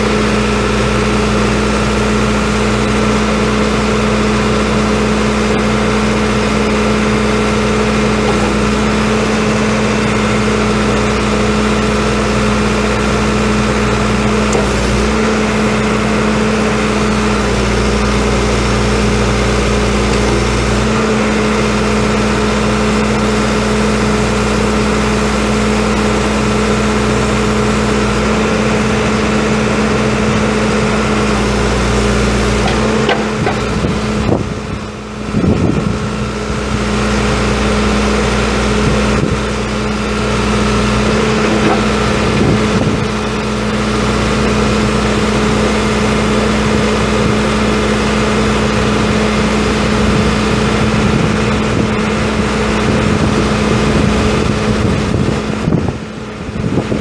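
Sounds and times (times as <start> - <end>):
diesel backhoe engine running: 0.0 - 57.0.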